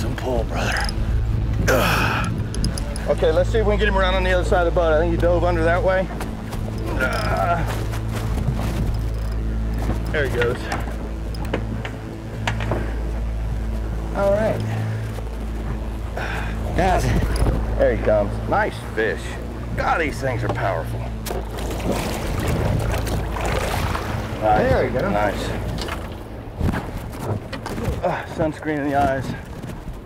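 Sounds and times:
outboard motor idling: 0.0 - 30.0
rumble of wind and sea: 0.0 - 30.0.

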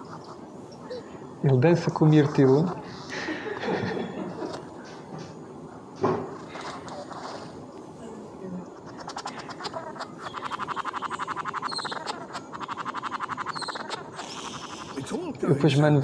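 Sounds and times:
bird call of dry clicks: 8.7 - 15.2.

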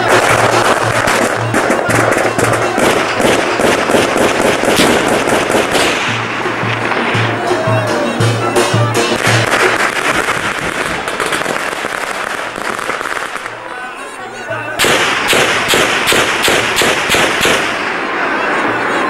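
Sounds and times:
low drum beats: 0.0 - 13.6.

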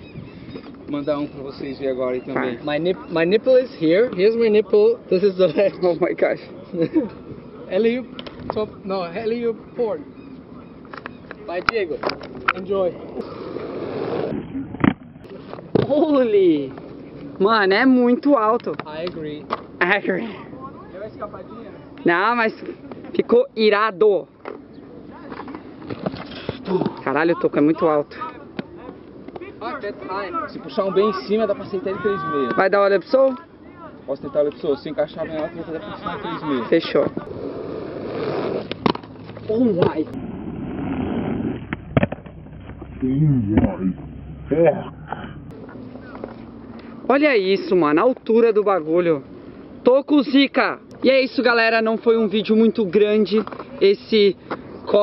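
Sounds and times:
skate wheels rolling on concrete: 0.5 - 55.0
skates clacking on concrete: 18.5 - 19.7, 38.3 - 40.1.

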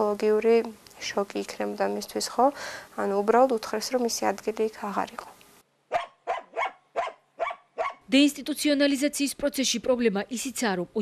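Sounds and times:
dog barking: 5.9 - 8.0.

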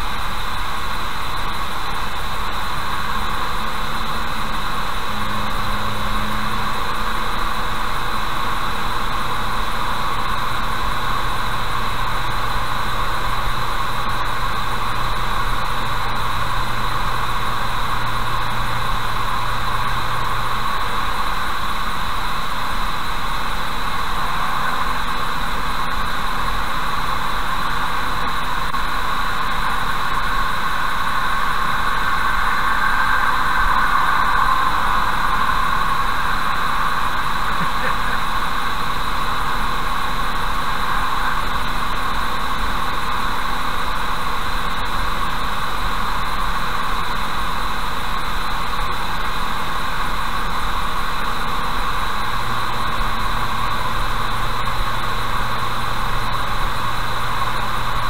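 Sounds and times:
faint low hum: 0.0 - 58.0
car road noise from inside: 0.5 - 47.6.

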